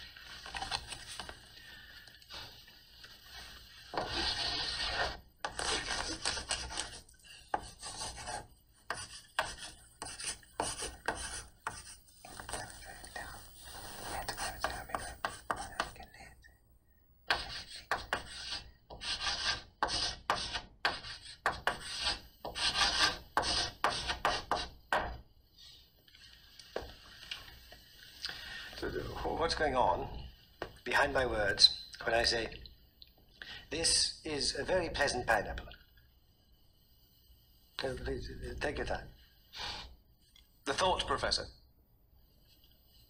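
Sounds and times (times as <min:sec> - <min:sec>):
chalk scraping on blackboard: 0:03.3 - 0:12.7, 0:13.6 - 0:16.0, 0:17.3 - 0:24.8.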